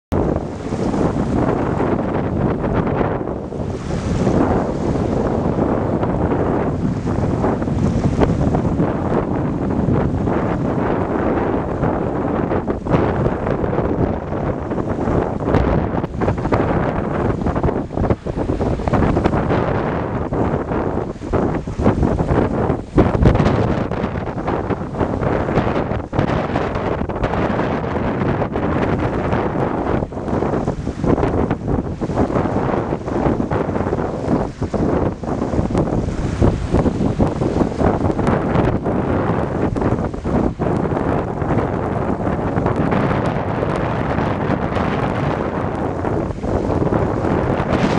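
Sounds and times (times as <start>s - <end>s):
wind blowing across microphone: 0.1s - 47.9s.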